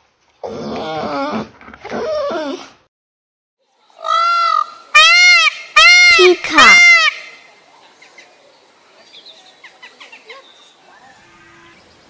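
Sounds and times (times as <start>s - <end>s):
peacock calling: 4.0s - 8.3s, 9.6s - 12.0s.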